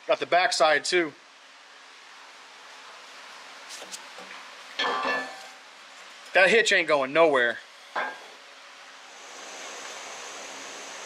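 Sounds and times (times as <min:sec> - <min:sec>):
low room hiss: 0:00.0 - 0:11.0.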